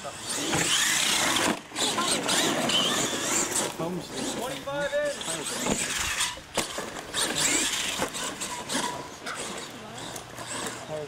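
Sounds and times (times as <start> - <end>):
toy truck motor running: 0.0 - 11.0.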